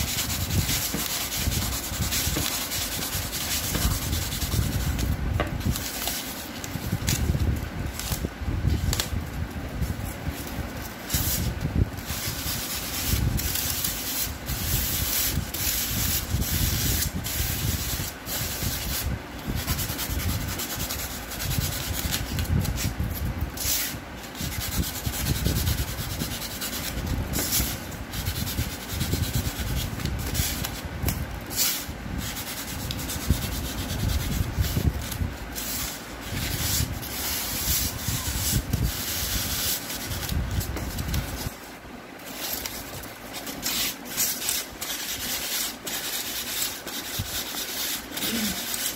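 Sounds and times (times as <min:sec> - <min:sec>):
knife scratching through foam: 0:00.0 - 0:09.1, 0:09.9 - 0:41.6, 0:42.2 - 0:48.9.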